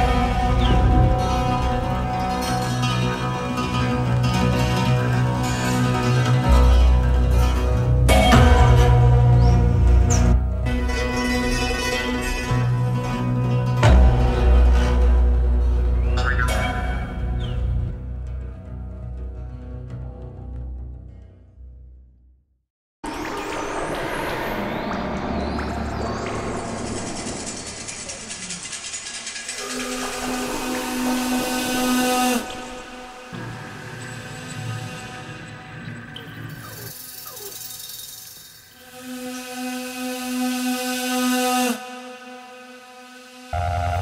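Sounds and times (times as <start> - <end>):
synthesizer drone: 23.0 - 37.6, 38.8 - 44.0.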